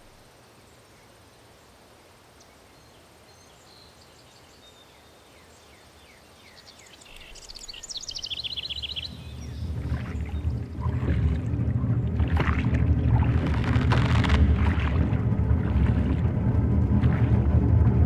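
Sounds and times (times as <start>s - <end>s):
low rumbling drone: 8.2s - 18.0s
river water rushing: 8.8s - 17.5s.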